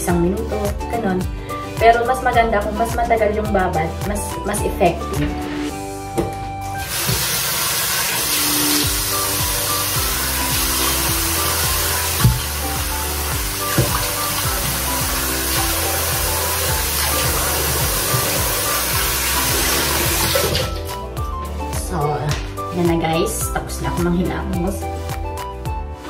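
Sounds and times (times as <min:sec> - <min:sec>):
background music: 0:00.0 - 0:26.0
water running from a tap: 0:06.8 - 0:21.0
water splashing: 0:06.9 - 0:20.9.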